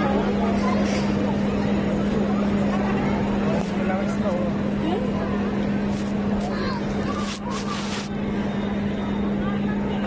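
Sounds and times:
low mechanical hum: 0.0s - 10.0s
people talking: 0.0s - 10.0s.

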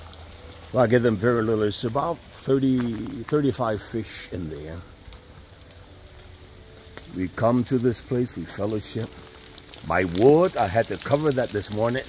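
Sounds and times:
light rain hissing: 0.0s - 12.0s.

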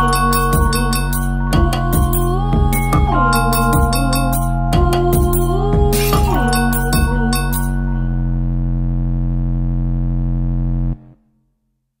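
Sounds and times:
held pop song chord: 0.0s - 8.4s.

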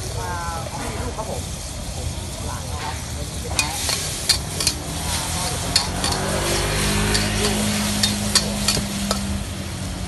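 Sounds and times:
food sizzling in a wok: 0.0s - 10.0s
metal ladle scraping a wok: 3.5s - 9.4s.

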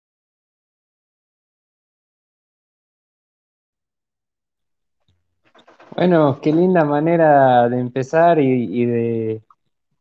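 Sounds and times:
room noise: 5.0s - 8.3s.

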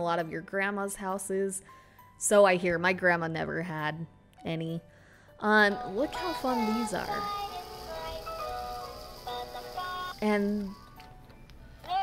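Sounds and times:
toy speaker playing melody: 5.8s - 11.0s.

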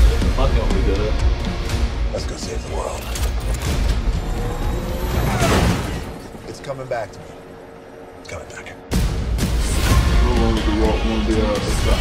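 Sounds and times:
dramatic orchestral score: 0.0s - 12.0s.

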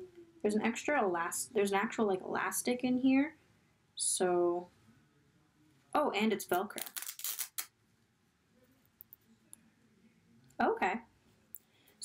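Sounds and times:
velcro being pulled apart: 6.7s - 7.7s.

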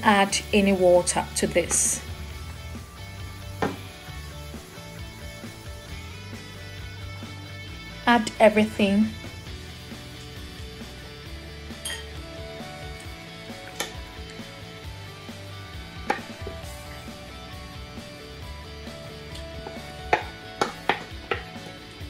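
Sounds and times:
wooden spatula knocking on a pan: 3.6s - 3.8s, 19.6s - 21.6s.

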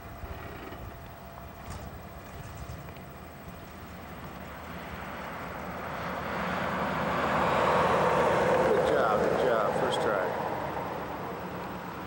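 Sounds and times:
truck engine: 4.0s - 12.0s.

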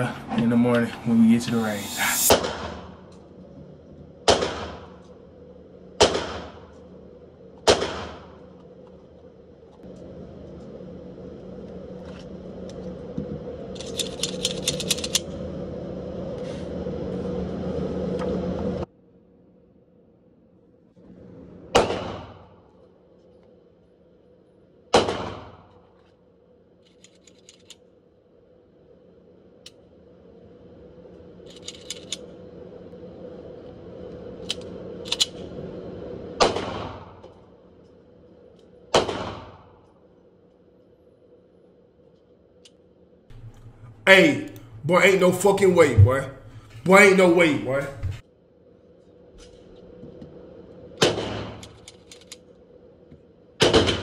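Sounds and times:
steady hum: 0.0s - 18.9s, 27.9s - 51.0s
gunshots echoing indoors: 4.2s - 5.0s, 5.9s - 6.8s, 7.6s - 8.5s, 21.7s - 22.6s, 24.8s - 25.8s, 36.4s - 37.4s, 38.9s - 39.9s, 51.0s - 51.8s
rattles of clicking: 13.7s - 15.3s, 26.9s - 27.8s, 31.5s - 32.3s, 51.6s - 52.4s.

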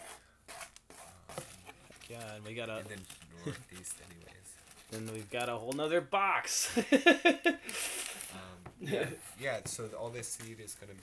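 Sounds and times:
paper and cardboard rustling: 0.0s - 6.0s, 7.8s - 11.0s.

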